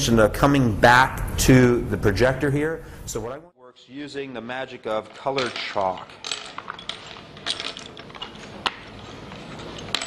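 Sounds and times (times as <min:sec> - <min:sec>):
chalk sticks clicking and rattling: 0:04.9 - 0:10.0.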